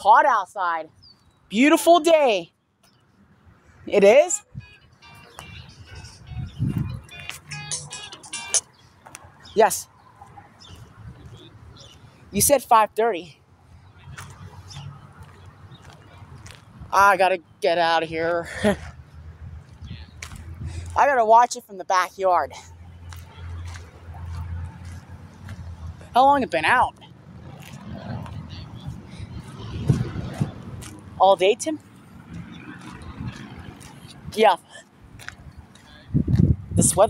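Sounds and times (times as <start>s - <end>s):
high-pitched music notes: 4.3s - 8.7s
wind buffeting microphone: 5.5s - 7.2s, 10.6s - 12.5s, 18.6s - 21.0s, 23.0s - 31.2s, 31.8s - 37.0s.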